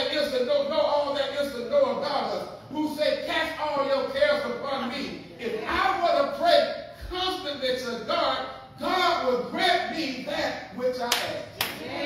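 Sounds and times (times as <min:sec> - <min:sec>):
man preaching: 0:00.0 - 0:11.6
sharp hand claps: 0:11.1 - 0:11.8.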